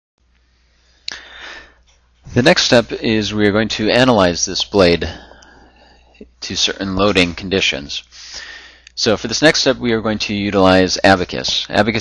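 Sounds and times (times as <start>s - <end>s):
faint steady low hum: 0.2s - 12.0s
sharp intake of breath: 0.5s - 2.4s, 5.1s - 6.2s, 8.1s - 9.0s.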